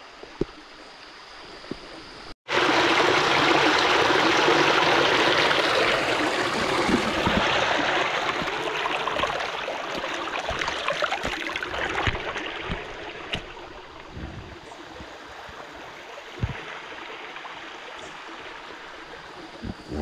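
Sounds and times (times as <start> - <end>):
water rushing over rocks: 2.5 - 20.0.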